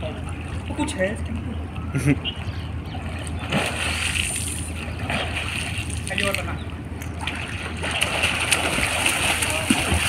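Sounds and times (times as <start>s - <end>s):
pool water sloshing and splashing: 0.0s - 1.7s, 2.4s - 10.0s
steady low hum: 0.0s - 10.0s.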